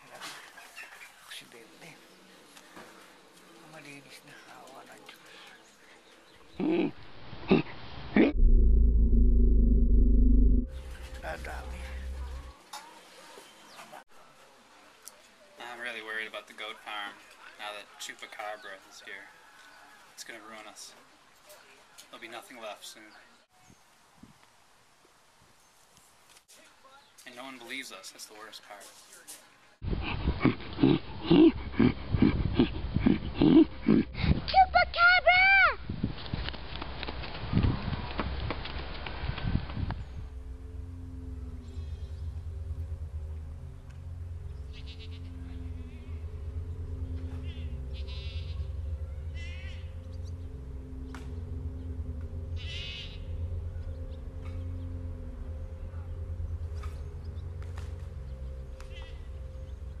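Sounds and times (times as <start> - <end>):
person making guttural grunts: 6.6 - 8.4, 29.8 - 34.4
low rumble: 7.0 - 12.6, 29.8 - 34.6, 39.4 - 60.0
goat bleating: 44.7 - 45.3, 48.0 - 48.6, 52.6 - 53.2.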